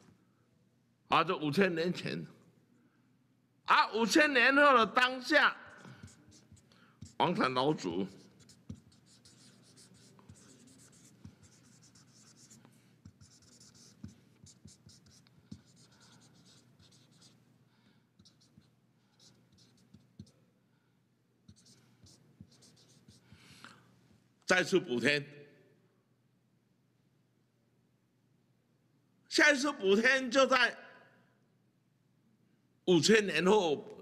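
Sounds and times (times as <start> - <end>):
marker scratching on paper: 5.7 - 17.4, 18.2 - 20.5, 21.4 - 23.6.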